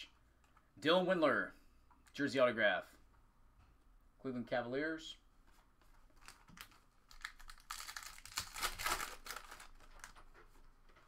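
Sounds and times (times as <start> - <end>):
foil packaging crinkling: 6.2 - 10.4.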